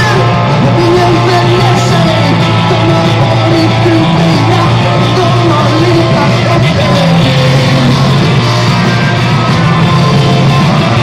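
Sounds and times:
person singing: 0.0 - 8.4
bass line: 0.0 - 11.0
live rock band playing: 0.0 - 11.0.

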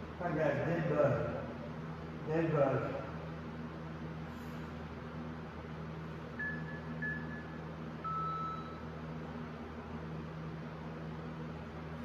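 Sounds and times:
fan hum: 0.0 - 12.0
timer beeping: 6.4 - 8.8.

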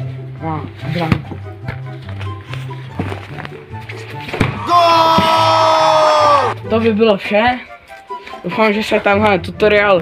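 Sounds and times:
background music with bass line: 0.0 - 7.5
football kick thump: 4.3 - 4.6.

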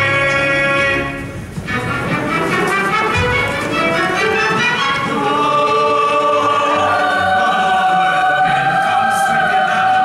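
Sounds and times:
orchestra with brass playing: 0.0 - 10.0.

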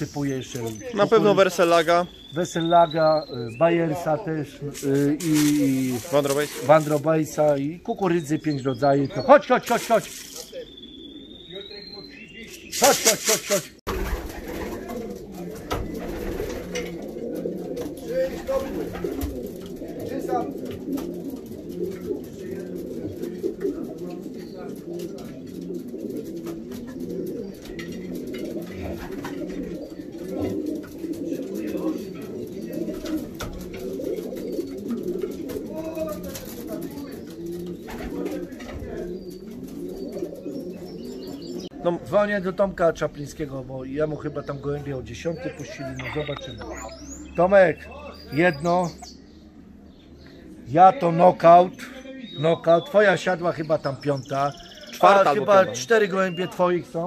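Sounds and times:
pigeons cooing: 0.0 - 57.0.

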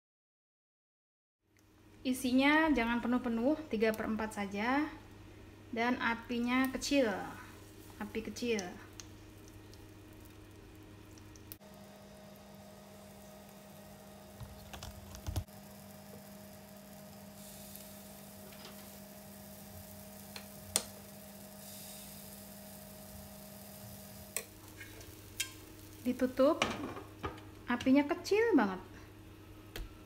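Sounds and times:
steady low hum: 1.6 - 30.0
batter sizzling in a pan: 6.6 - 27.6.

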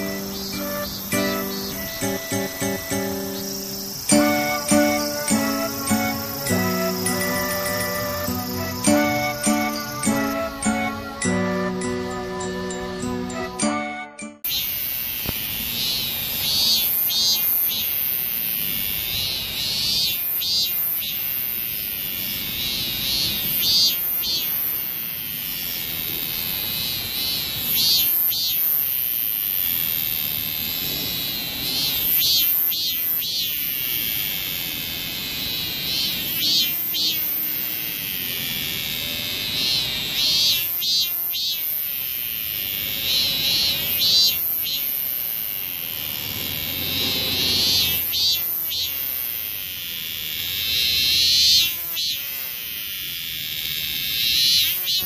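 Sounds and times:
cicada buzzing: 0.0 - 13.8, 14.4 - 55.0.

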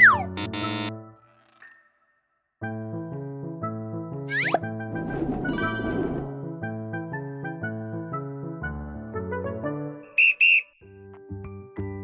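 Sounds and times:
loud whistle blasts: 10.1 - 10.8.

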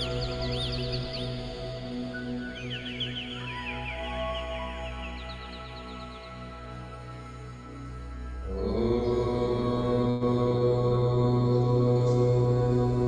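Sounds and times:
devotional chanting: 0.0 - 13.0.

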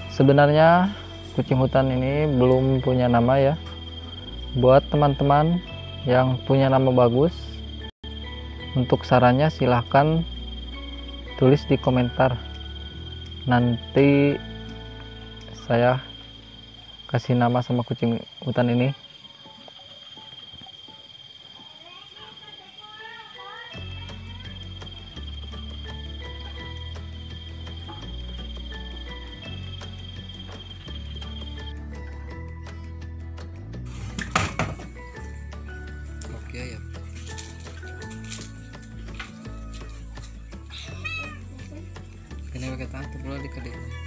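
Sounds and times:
cricket trill: 0.0 - 33.0, 33.6 - 44.0
background music: 0.0 - 44.0
cat meowing: 39.4 - 41.7, 43.6 - 44.0.

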